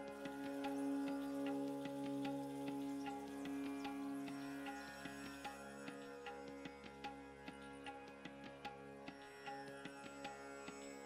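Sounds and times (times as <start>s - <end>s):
held drone: 0.0s - 6.0s
light ticking beat: 0.0s - 10.9s.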